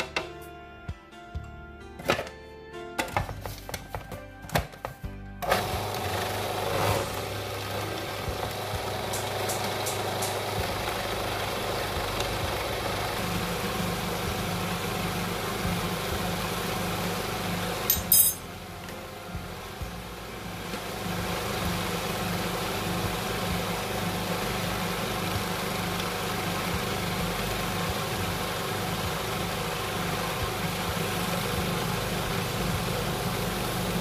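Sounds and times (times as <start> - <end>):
background music: 0.0 - 34.0
food processor grinding: 5.4 - 18.0, 20.5 - 34.0.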